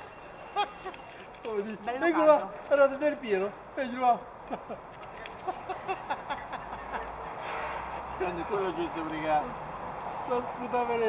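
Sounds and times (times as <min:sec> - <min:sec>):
man laughing: 0:04.4 - 0:07.3.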